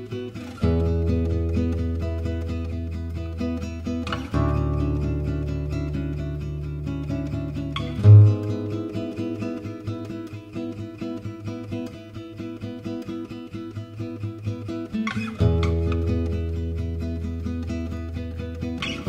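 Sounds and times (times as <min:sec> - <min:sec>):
acoustic guitar music: 0:00.0 - 0:19.0.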